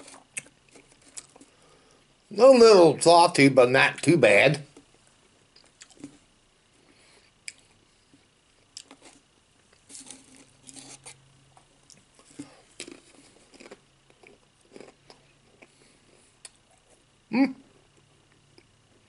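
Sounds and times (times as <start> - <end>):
crisps being chewed: 0.0 - 1.5, 4.7 - 6.2, 8.6 - 17.0.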